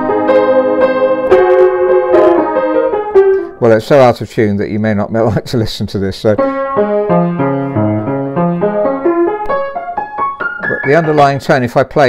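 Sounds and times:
out of tune piano playing: 0.0 - 3.7, 6.4 - 11.9.

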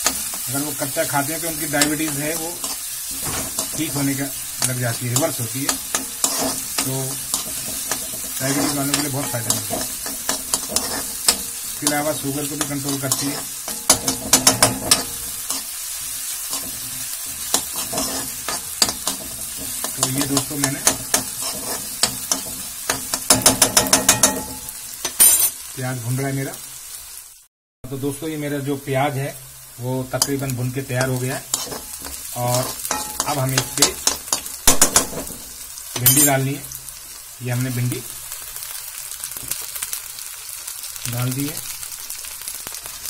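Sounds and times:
onions sizzling in oil: 0.0 - 43.0
metal spatula scraping pan: 1.6 - 25.6, 31.0 - 36.4.

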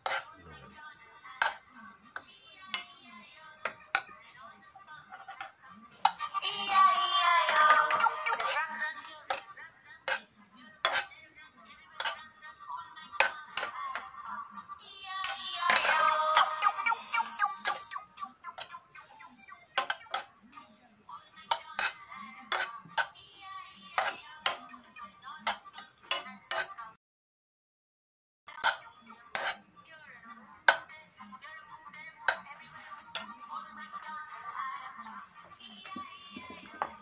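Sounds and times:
metal utensil scraping frying pan: 0.0 - 0.4, 1.4 - 1.6, 7.4 - 9.5, 10.1 - 11.1, 12.0 - 12.2, 15.2 - 17.9, 21.5 - 23.1, 28.6 - 29.6
faint background music: 0.0 - 27.0, 28.5 - 37.0.

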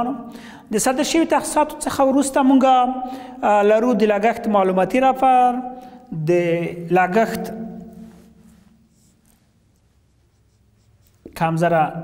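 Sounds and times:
marker scratching on whiteboard: 8.6 - 11.4.

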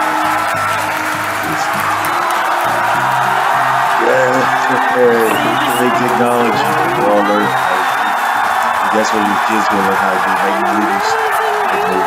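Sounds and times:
crowd cheering and whooping: 0.0 - 12.0
music: 0.0 - 12.0.

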